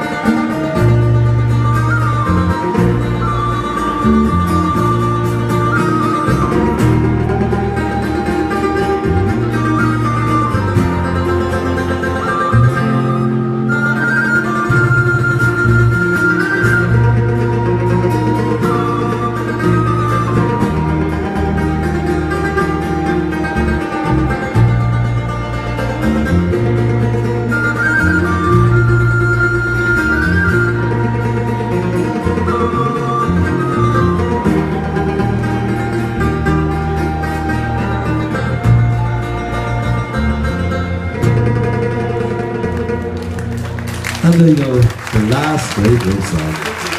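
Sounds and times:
banjo: 0:00.0 - 0:44.4
electric bass guitar: 0:00.0 - 0:46.8
acoustic guitar: 0:00.0 - 0:46.9.

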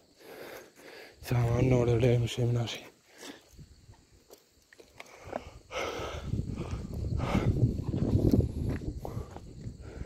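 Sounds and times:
footsteps on paved road: 0:06.6 - 0:10.0.

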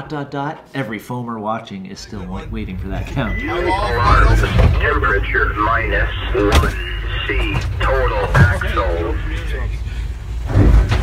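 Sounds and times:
locomotive rumble: 0:02.0 - 0:11.0.

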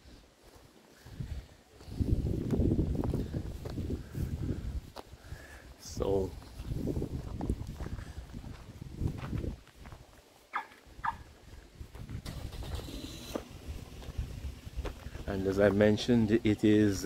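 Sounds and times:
footsteps on paved road: 0:00.0 - 0:05.5, 0:06.2 - 0:12.2, 0:13.3 - 0:16.2.

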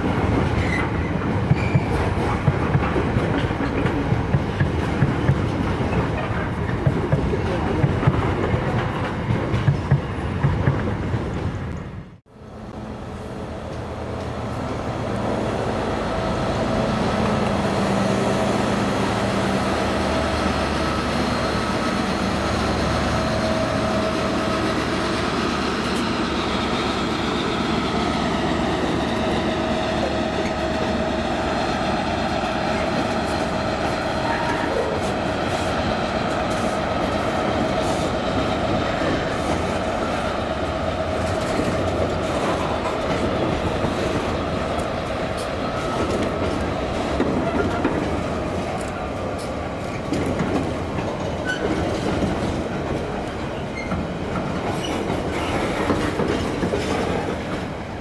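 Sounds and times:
wheels clacking over rail joints: 0:00.0 - 0:11.4, 0:36.2 - 0:58.0
train wheels rumbling on rails: 0:00.0 - 0:58.0.

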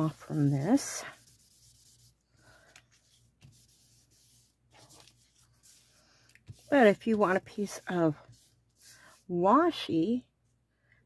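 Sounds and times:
cotton pad rubbing paper: 0:00.0 - 0:02.3, 0:02.9 - 0:09.4
paper rustle: 0:04.7 - 0:07.1.

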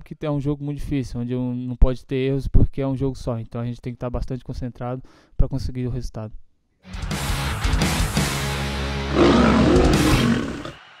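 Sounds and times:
rock guitar music: 0:06.9 - 0:10.8
lion roaring: 0:09.1 - 0:10.8.

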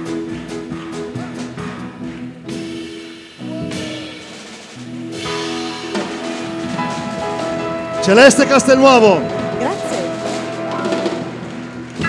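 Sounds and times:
drum kit and cymbals: 0:00.0 - 0:12.0
piano: 0:00.0 - 0:12.0
clarinet: 0:05.4 - 0:12.0.

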